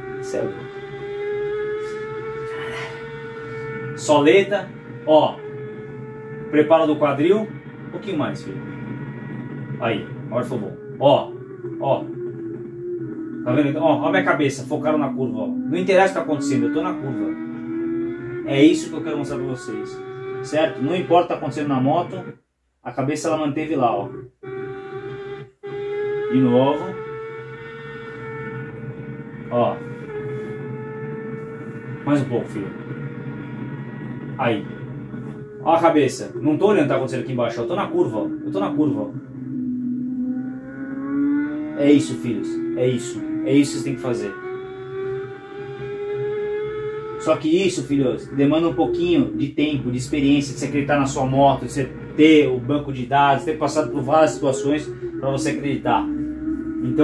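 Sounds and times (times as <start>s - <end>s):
motorcycle engine high revs whine: 0.0s - 22.4s, 23.0s - 57.0s.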